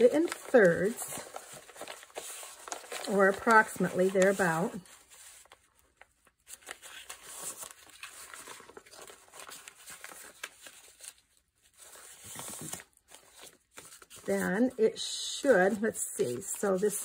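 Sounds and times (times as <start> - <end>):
paper rustling and creasing: 0.0 - 17.0.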